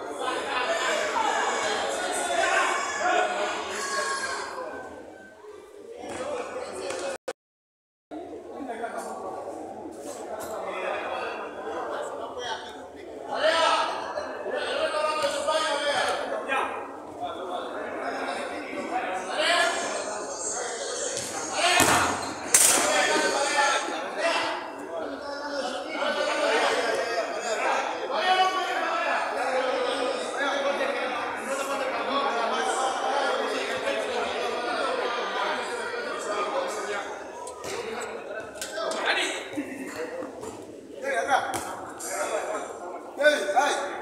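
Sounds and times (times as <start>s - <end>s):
men shouting and talking: 0.0s - 7.2s, 8.6s - 44.0s.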